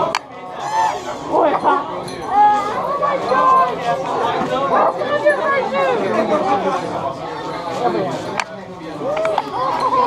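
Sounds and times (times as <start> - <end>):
group of people talking and exclaiming: 0.0 - 10.0.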